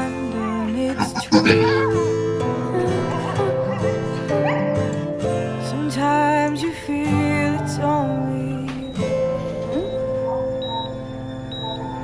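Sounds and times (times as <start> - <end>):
dog whimpering: 0.2 - 4.9, 9.4 - 12.0.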